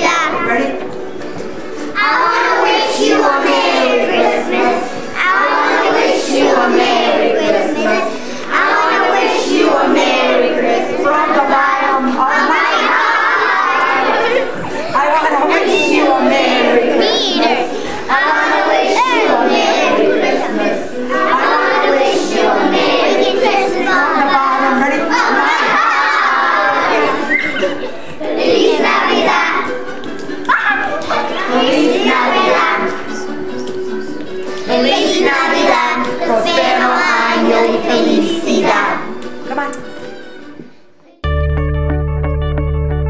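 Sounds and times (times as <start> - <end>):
children chattering: 0.0 - 39.8
music: 0.0 - 43.0.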